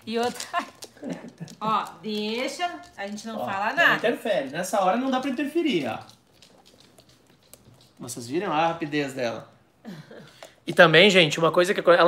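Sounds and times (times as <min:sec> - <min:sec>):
puppy claws clicking on hard floor: 0:00.0 - 0:09.4, 0:10.2 - 0:12.0.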